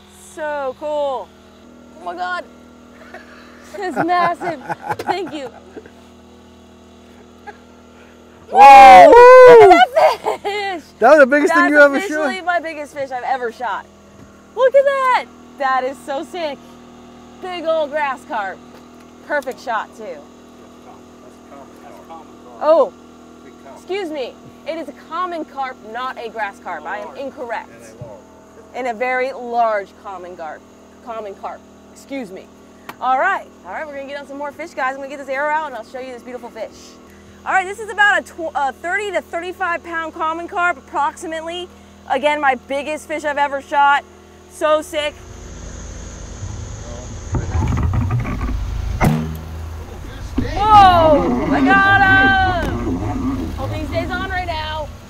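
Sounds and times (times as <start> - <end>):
boat motor humming: 0.0 - 55.0
low engine hum: 44.8 - 55.0
bow shot snap: 48.9 - 50.6
faint voices: 49.8 - 54.9.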